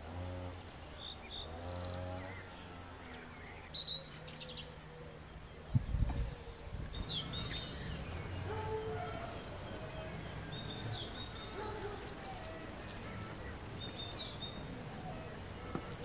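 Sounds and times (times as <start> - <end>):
small birds chirping: 0.6 - 16.0.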